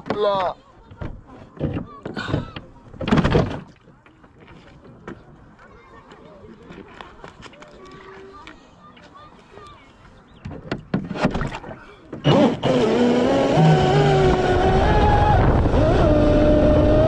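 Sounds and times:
water lapping against boat hull: 0:10.2 - 0:12.5.

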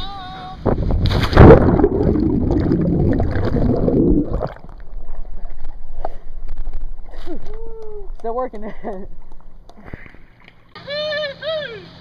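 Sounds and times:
water sloshing and gurgling: 0:00.7 - 0:07.5, 0:09.0 - 0:10.8
water splashing: 0:01.0 - 0:07.1.

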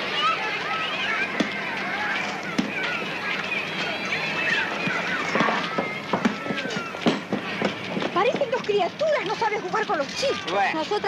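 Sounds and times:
children shouting: 0:00.0 - 0:08.7, 0:09.3 - 0:10.8
sharp knocks: 0:04.8 - 0:08.6.

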